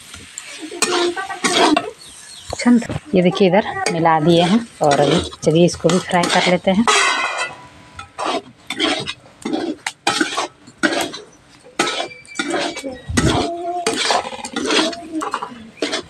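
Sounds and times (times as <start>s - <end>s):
metal spatula scraping a pan: 0.4s - 16.0s.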